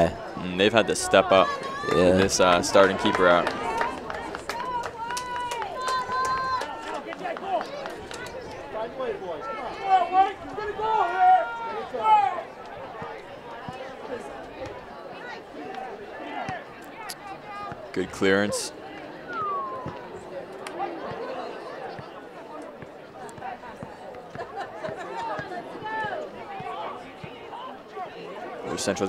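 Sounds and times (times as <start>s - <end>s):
faint crowd chatter: 0.0s - 29.0s
voices shouting: 0.9s - 22.0s.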